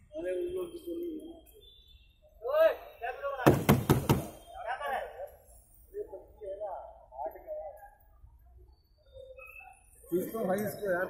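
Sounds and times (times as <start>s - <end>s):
knocks on vehicle door: 3.4s - 4.4s.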